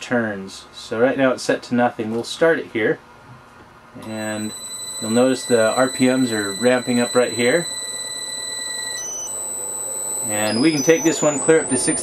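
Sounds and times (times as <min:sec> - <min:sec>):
centrifuge motor high-pitched whine: 0:04.0 - 0:12.0.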